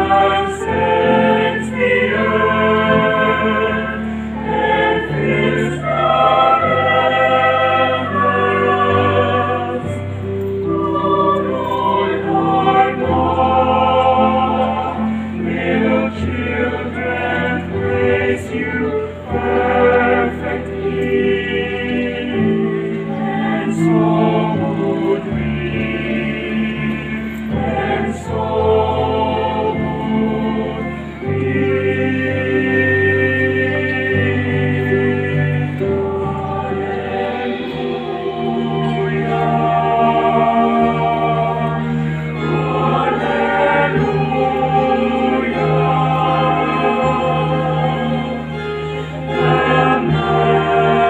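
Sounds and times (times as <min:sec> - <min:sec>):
choir singing a hymn: 0:00.0 - 0:51.0.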